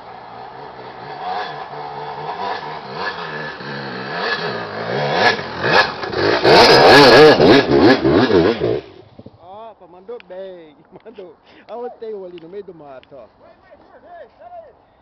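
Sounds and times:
dirt bike engine revving: 0.0 - 9.3.

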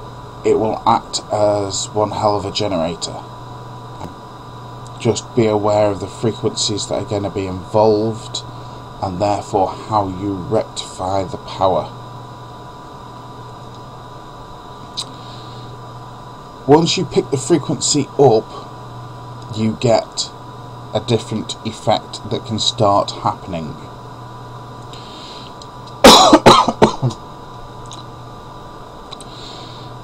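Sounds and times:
background hum and hiss: 0.0 - 30.0
man coughing: 26.0 - 27.2.

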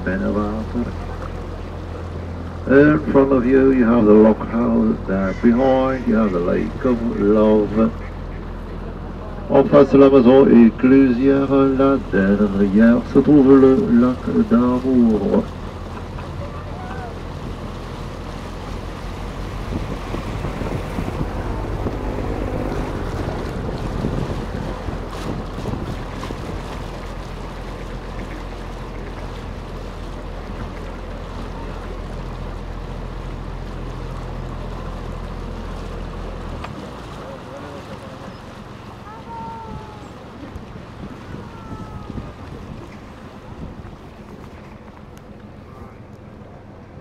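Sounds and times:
boat motor humming: 0.0 - 47.0
water wash: 0.0 - 47.0
wind on microphone: 16.8 - 29.3, 39.1 - 46.1.

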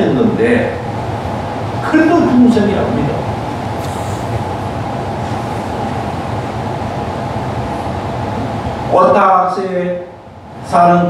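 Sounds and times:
room fan humming: 0.0 - 11.0.

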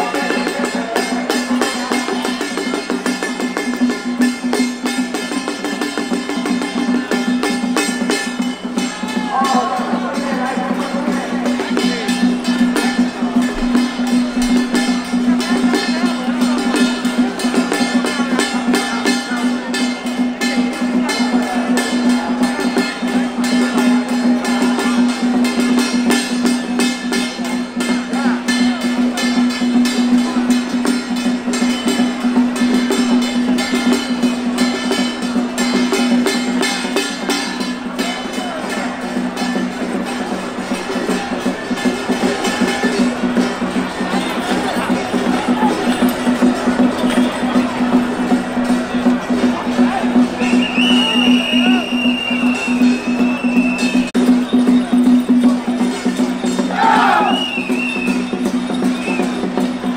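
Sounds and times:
procession music with drums: 0.0 - 59.9.

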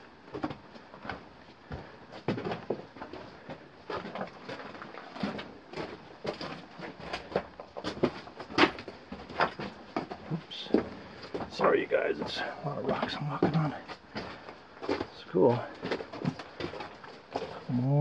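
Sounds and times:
footsteps crunching on gravel: 9.9 - 17.7.

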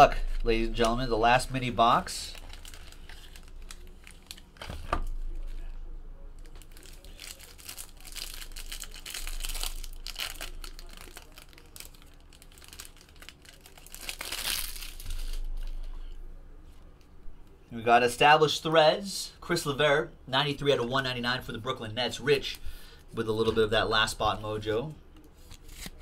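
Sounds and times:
cellophane crinkling and tearing: 0.2 - 5.7, 6.4 - 15.9.

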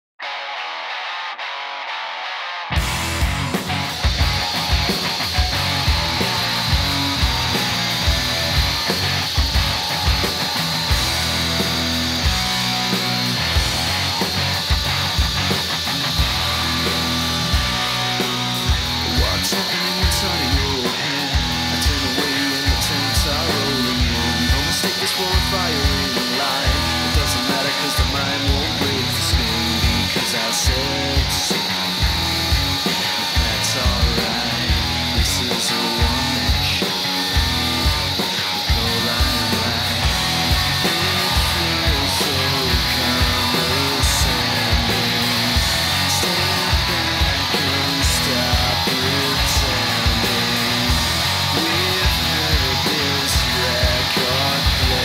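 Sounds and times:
rock music with electric guitar: 0.2 - 55.0.

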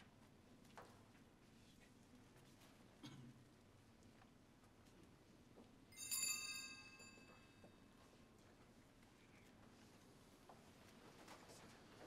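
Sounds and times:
high metallic chime: 5.9 - 7.6.

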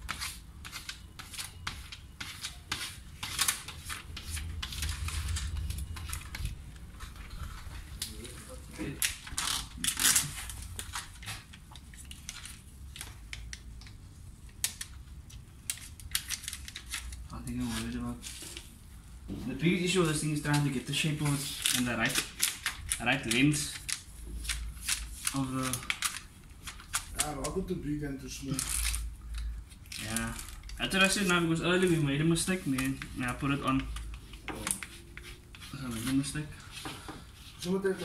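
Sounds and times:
squeegee scraping plastic film: 0.0 - 13.7, 19.9 - 27.7, 28.3 - 38.0.

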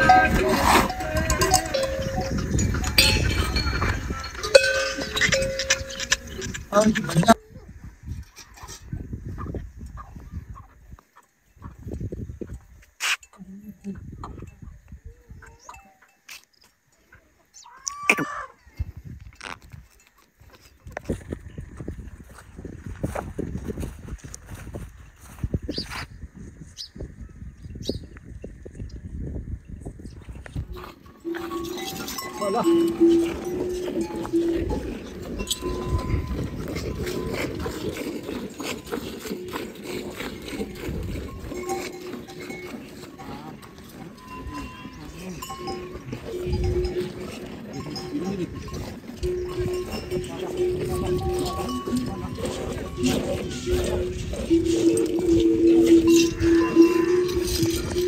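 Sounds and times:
cattle bells clanking: 0.0 - 7.4, 15.5 - 21.6, 29.6 - 58.0
animal sounds: 0.0 - 16.4, 17.0 - 18.8, 30.6 - 58.0.

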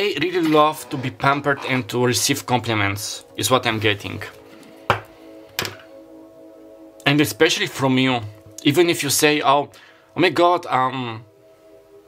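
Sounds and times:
soft music of held tones: 0.0 - 12.0
card deck thunk on table: 4.9 - 5.8.

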